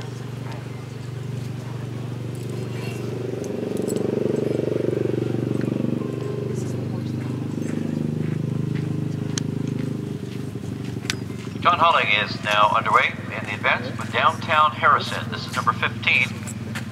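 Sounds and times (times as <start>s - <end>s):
engine running: 0.0s - 16.9s.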